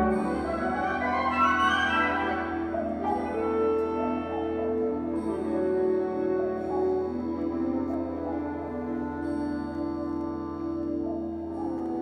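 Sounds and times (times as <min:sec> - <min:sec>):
wind ensemble playing chords: 0:00.0 - 0:12.0.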